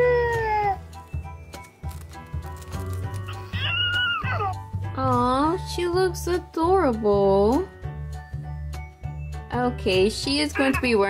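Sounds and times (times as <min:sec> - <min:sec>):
electronic doll baby crying: 0:00.0 - 0:00.8, 0:03.3 - 0:04.6, 0:10.5 - 0:11.0.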